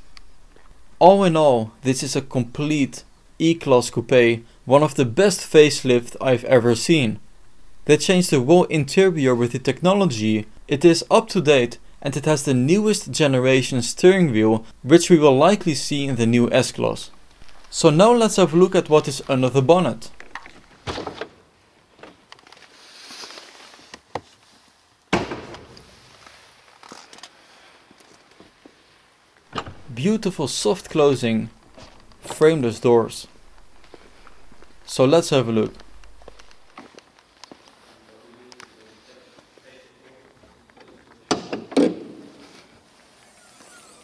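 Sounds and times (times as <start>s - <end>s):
car door shutting: 29.6s - 30.0s.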